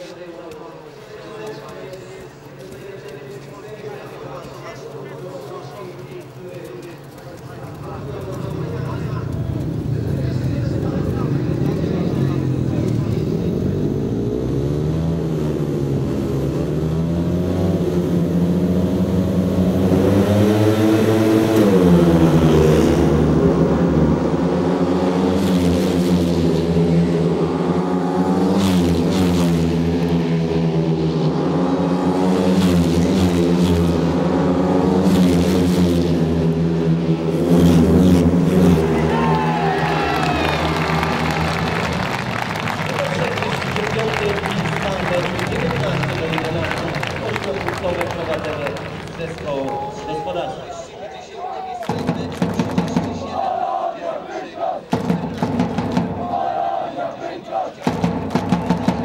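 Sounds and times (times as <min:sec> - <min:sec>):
motorcycle engines revving: 0:00.0 - 0:50.8, 0:51.8 - 0:59.0.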